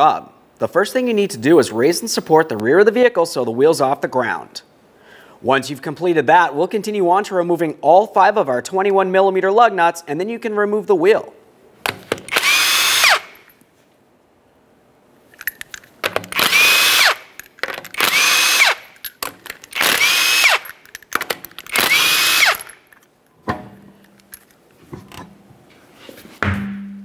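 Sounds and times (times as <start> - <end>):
impact wrench spinning: 11.9 - 13.5, 15.4 - 23.0.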